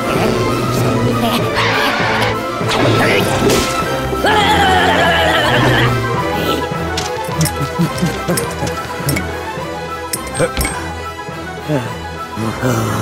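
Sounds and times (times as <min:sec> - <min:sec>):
cartoon background music: 0:00.0 - 0:13.0.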